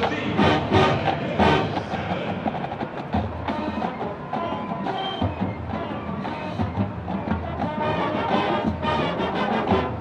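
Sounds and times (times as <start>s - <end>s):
marching band full hit: 0.0s - 10.0s
percussion: 0.0s - 10.0s.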